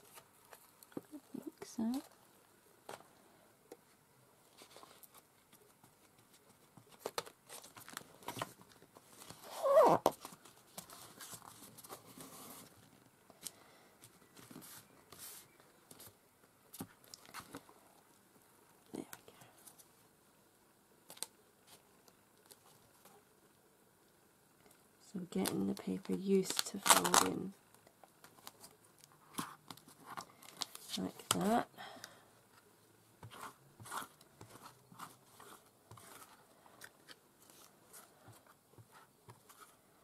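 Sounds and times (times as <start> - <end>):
book being folded and pressed: 2.8 - 17.7, 25.2 - 39.8
paper rustling and crinkling: 4.4 - 17.7, 28.2 - 31.6, 33.2 - 39.8.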